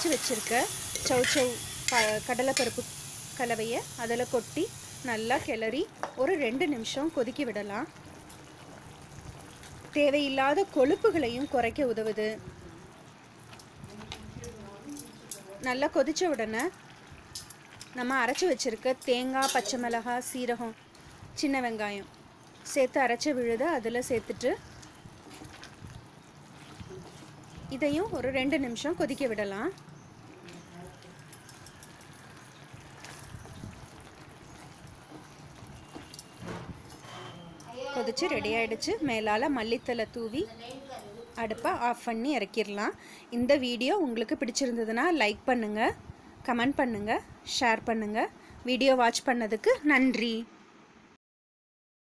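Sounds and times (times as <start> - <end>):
spatula stirring in a pot: 0.0 - 3.0, 23.5 - 29.5, 32.1 - 37.4
thick mixture bubbling: 4.9 - 14.8, 20.0 - 40.4.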